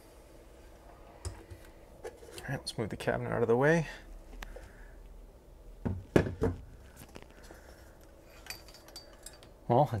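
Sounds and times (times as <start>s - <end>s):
knocks on wooden cabinet: 5.8s - 6.6s.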